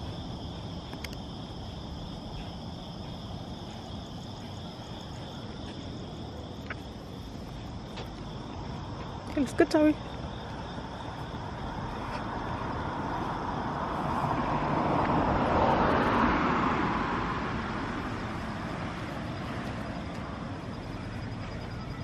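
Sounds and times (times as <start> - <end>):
car driving past: 10.8 - 21.8.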